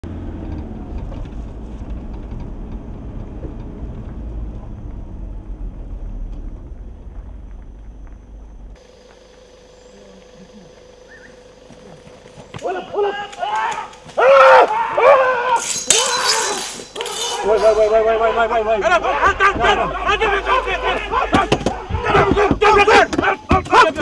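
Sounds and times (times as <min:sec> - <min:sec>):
vehicle engine and tyre rumble: 0:00.0 - 0:09.5
faint steady hum: 0:04.1 - 0:14.2.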